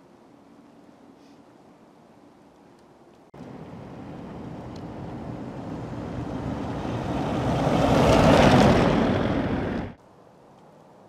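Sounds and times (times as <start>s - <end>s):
vehicle passing: 3.4s - 10.0s.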